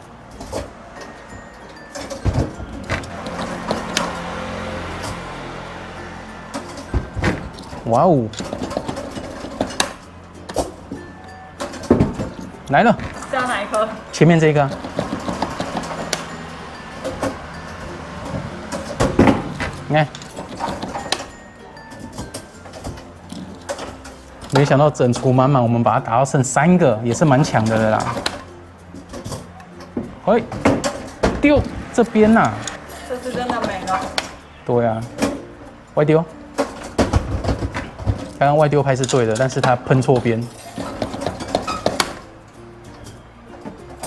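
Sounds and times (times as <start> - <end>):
arcade background noise: 0.0 - 44.0
claw machine motor running: 3.1 - 9.6
claw machine clicks and knocks: 8.3 - 10.6.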